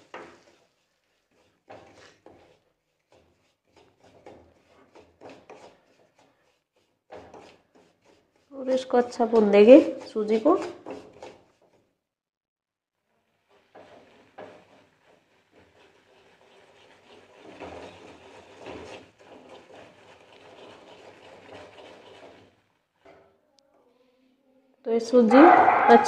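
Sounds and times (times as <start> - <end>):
wooden spatula scraping semolina: 0.0 - 12.0, 13.0 - 23.4, 25.1 - 26.0.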